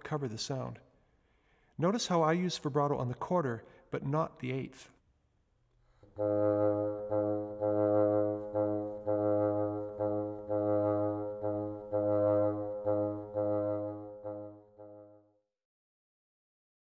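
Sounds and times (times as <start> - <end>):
solo bassoon low notes: 6.0 - 15.4.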